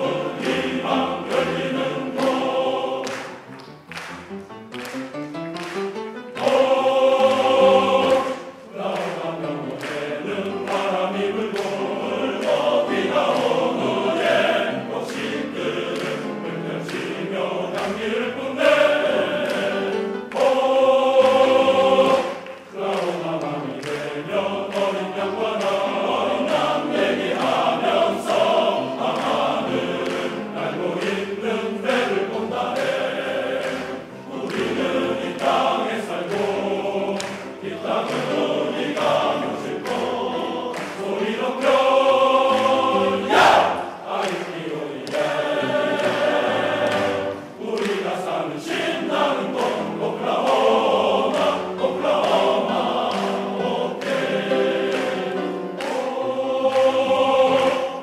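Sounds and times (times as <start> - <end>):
men's chorus singing in harmony: 0.0 - 3.6, 6.3 - 58.0.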